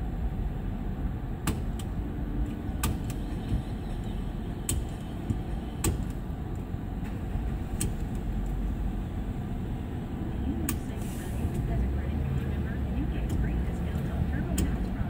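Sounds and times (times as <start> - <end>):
traffic rumble: 0.0 - 15.0.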